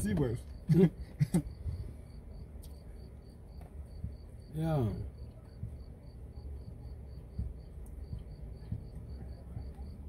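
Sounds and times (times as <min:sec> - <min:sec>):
cricket chirping: 0:00.0 - 0:10.0
low steady rumble: 0:00.0 - 0:10.0.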